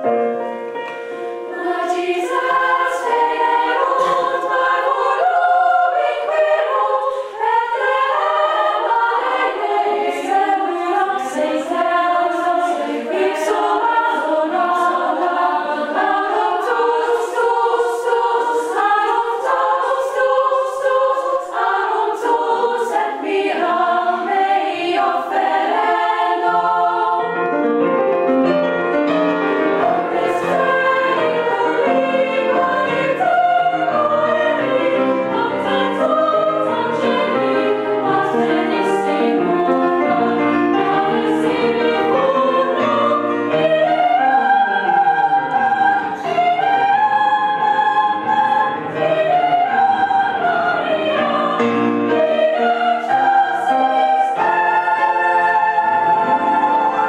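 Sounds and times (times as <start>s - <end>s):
female choir singing: 0.0s - 27.9s, 29.4s - 57.0s.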